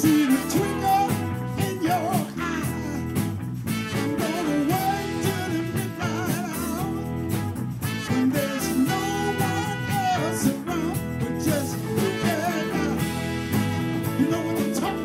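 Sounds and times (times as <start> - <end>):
soul band playing: 0.0 - 15.0.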